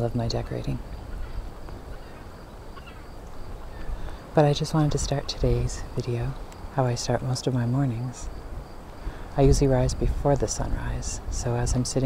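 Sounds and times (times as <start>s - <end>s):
faint bird call: 1.0s - 4.0s.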